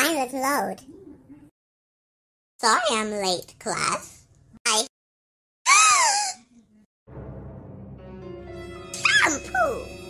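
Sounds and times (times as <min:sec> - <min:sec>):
cartoon voice whimpering cries: 0:05.7 - 0:06.4
background music: 0:07.1 - 0:10.0.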